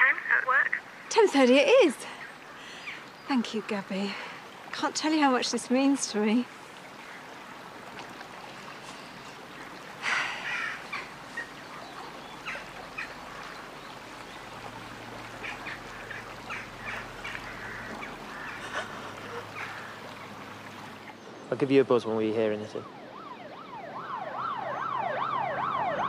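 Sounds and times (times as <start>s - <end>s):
birds calling: 0.0s - 23.7s
faint outdoor background: 0.0s - 26.0s.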